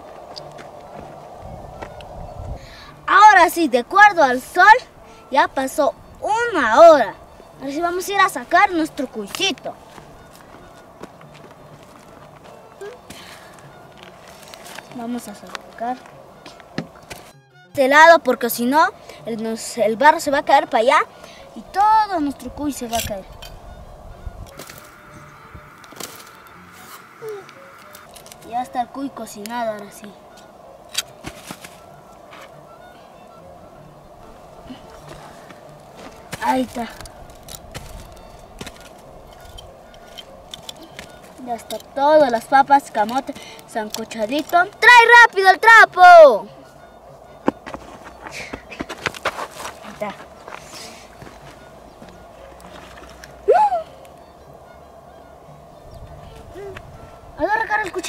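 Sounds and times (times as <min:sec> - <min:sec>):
footsteps on dry grass: 0:00.0 - 0:03.1, 0:07.1 - 0:17.3, 0:22.9 - 0:28.6, 0:29.5 - 0:44.8, 0:47.0 - 0:53.4
stick and clods clicking: 0:36.1 - 0:44.8.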